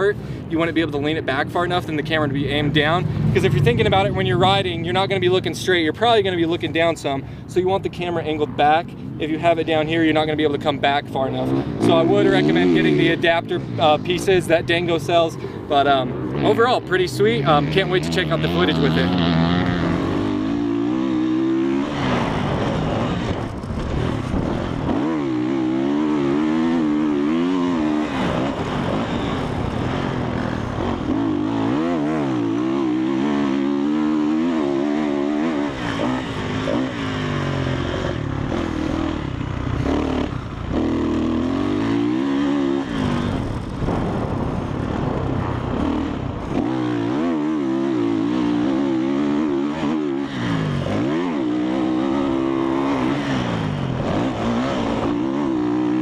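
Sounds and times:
dirt bike engine revving: 0:09.4 - 0:56.0.

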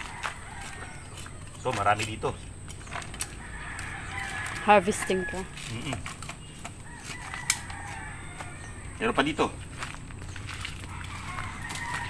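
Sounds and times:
rooster crowing faintly: 0:00.0 - 0:01.8, 0:06.8 - 0:09.6, 0:10.7 - 0:12.0.

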